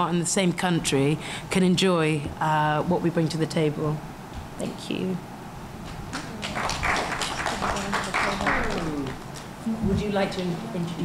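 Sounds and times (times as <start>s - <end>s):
people clapping: 5.9s - 9.5s.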